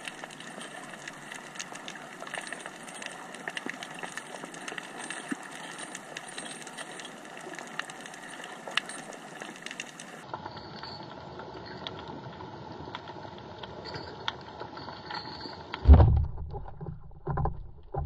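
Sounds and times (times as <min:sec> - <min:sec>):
sharp clicks and crackles: 0:00.0 - 0:18.0.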